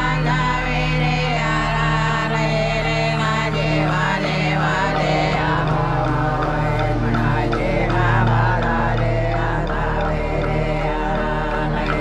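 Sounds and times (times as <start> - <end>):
sustained low drone: 0.0 - 12.0
women singing a chant: 0.0 - 12.0.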